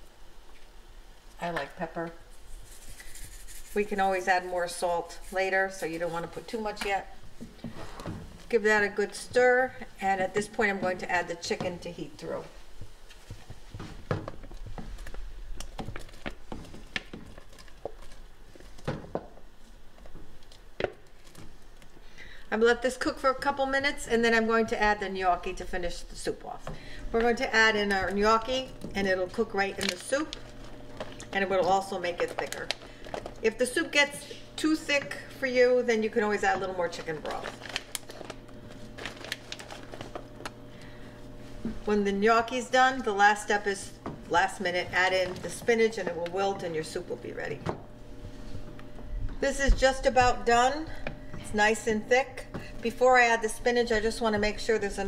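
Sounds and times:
plastic package crinkling: 29.3s - 31.4s, 32.0s - 33.5s, 36.9s - 40.5s.

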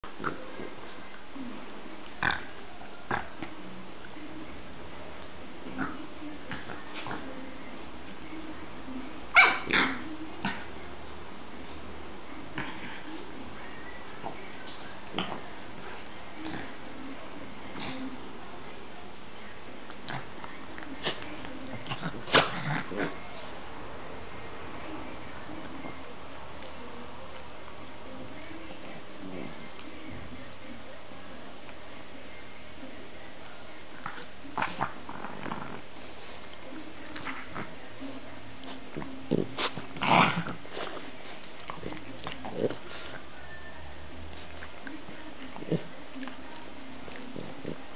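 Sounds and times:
small dog barking: 9.3s - 9.9s.

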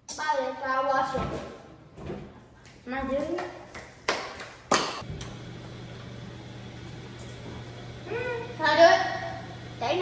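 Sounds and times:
voice humming: 8.0s - 8.6s.

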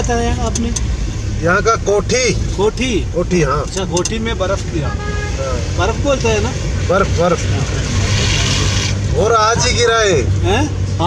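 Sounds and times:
vehicle engine hum: 0.0s - 11.0s
tyres hissing on wet road: 7.1s - 9.7s.

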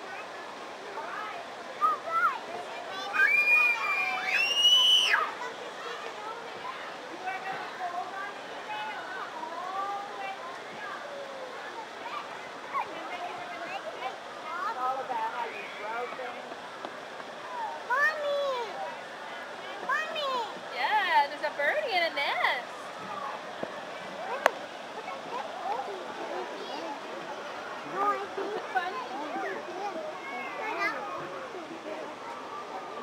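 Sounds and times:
children calling and chattering: 0.0s - 33.0s.

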